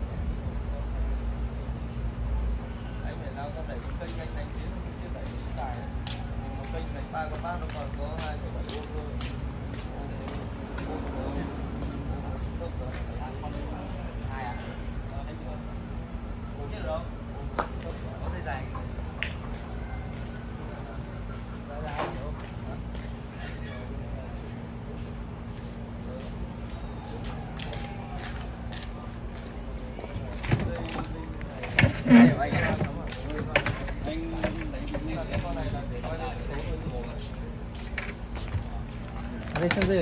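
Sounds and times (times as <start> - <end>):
distant people talking: 0.0 - 40.0
faint voices: 0.0 - 40.0.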